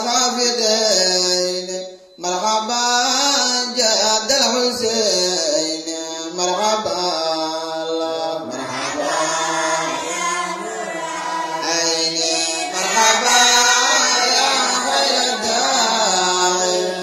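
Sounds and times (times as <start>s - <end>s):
man chanting into a microphone: 0.0s - 10.0s, 11.3s - 17.0s.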